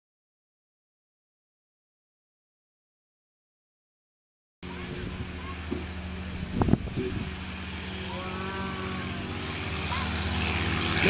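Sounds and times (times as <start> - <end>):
propeller aircraft engines: 4.6 - 11.0.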